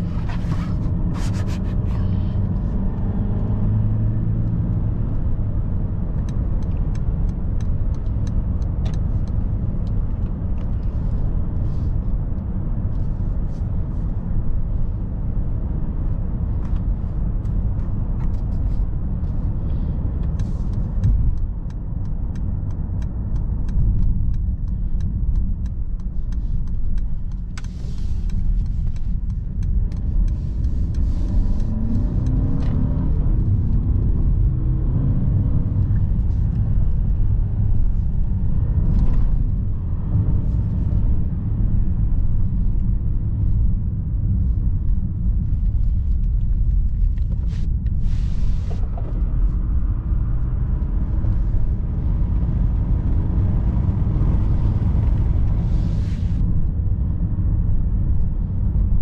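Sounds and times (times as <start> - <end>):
car engine accelerating: 0.0 - 12.5, 14.4 - 59.0
road and tyre rumble: 0.0 - 59.0.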